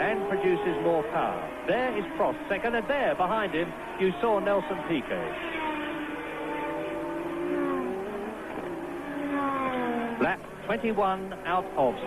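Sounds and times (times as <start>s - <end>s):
racing car engine passing by: 0.0s - 12.0s.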